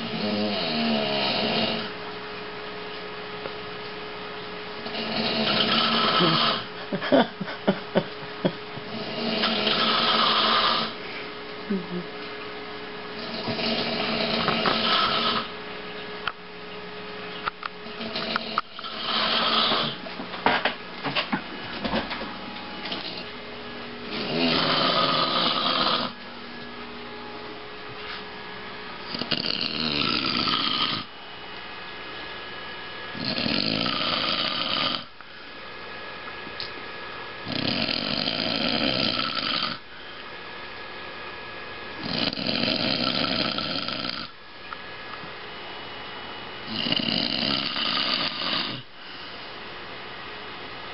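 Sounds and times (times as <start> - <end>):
man snoring loudly: 0.0 - 1.9, 4.8 - 6.7, 8.9 - 11.0, 13.2 - 15.5, 18.0 - 20.0, 24.1 - 26.2, 29.1 - 31.1, 33.2 - 35.1, 37.4 - 39.8, 42.0 - 44.4, 46.6 - 48.9.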